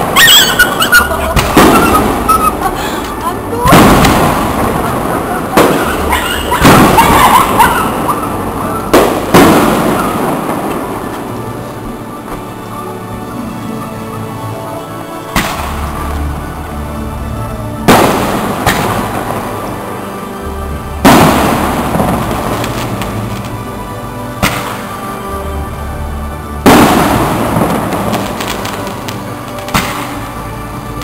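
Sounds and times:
fireworks bursting with loud bangs: 0.0 - 12.6, 15.3 - 16.6, 17.8 - 25.2, 26.6 - 31.0
fireworks crackling: 0.0 - 13.1, 15.2 - 25.9, 26.5 - 31.0
music playing: 0.0 - 31.0.

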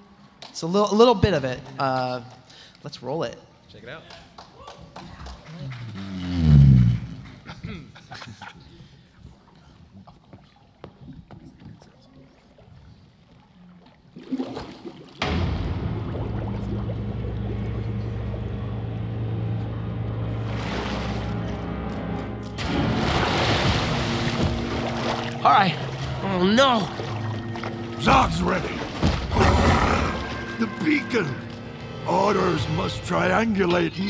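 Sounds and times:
dramatic droning music: 15.2 - 34.0.

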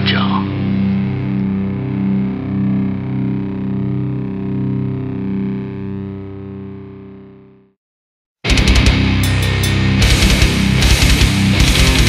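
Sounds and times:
distorted electric guitar chord: 0.0 - 7.6, 8.5 - 12.0.

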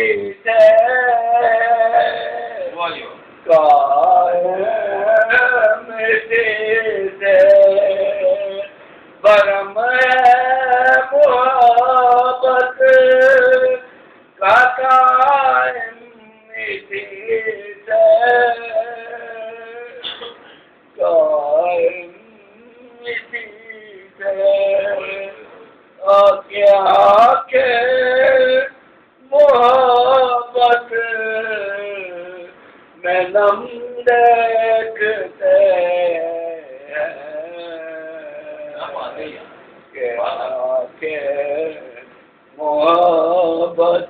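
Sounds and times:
man singing devotional song: 0.0 - 44.0.

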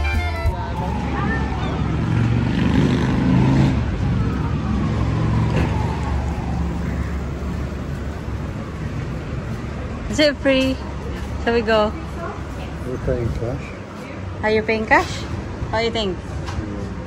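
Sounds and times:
vehicle engine passing by: 0.5 - 10.1.

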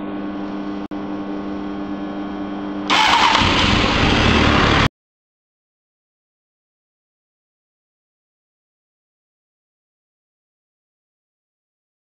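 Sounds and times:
motorcycle engine running: 2.9 - 4.9
starter motor cranking: 2.9 - 4.9.

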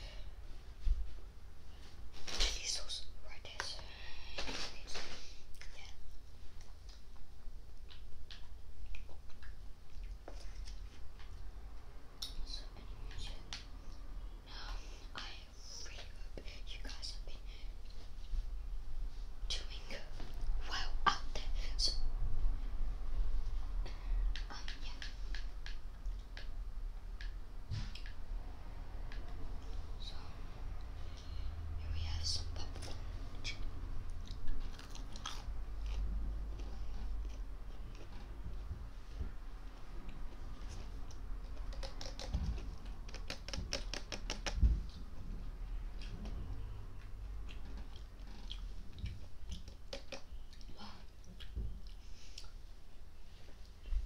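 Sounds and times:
steady low hum: 0.0 - 54.0
person whispering: 2.3 - 6.1, 12.3 - 13.5, 14.4 - 17.8, 19.5 - 22.1, 23.9 - 25.4, 29.9 - 30.7, 31.8 - 33.8, 50.7 - 51.2
crisp eating crackles: 34.1 - 38.4.

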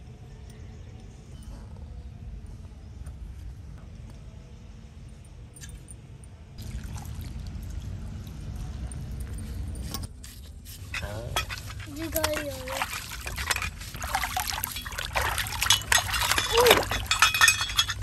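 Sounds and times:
low steady rumble: 0.0 - 18.0
person speaking: 11.0 - 13.2
hand squishing wet dough: 11.5 - 16.9.

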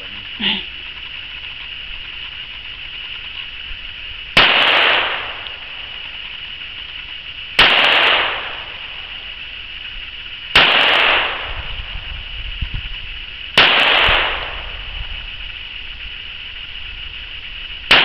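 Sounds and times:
pistol shots with echo: 4.4 - 6.1, 7.6 - 9.1, 10.5 - 11.6, 13.6 - 14.7.

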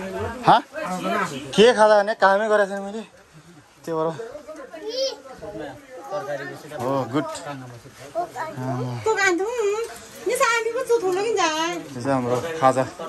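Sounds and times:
people talking and calling out: 0.0 - 13.0.

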